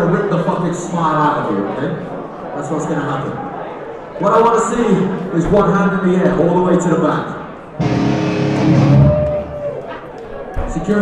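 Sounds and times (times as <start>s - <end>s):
held guitar note: 7.8s - 9.7s
live metal band playing: 7.8s - 9.7s.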